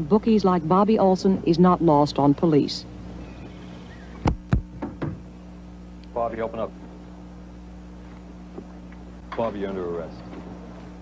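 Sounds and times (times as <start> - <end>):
knocking on a door: 4.3 - 5.2.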